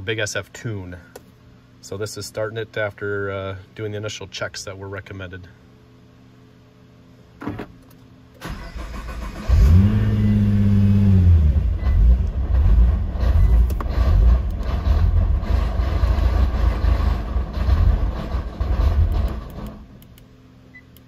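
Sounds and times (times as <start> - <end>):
car engine cranking and idling: 8.4 - 20.2.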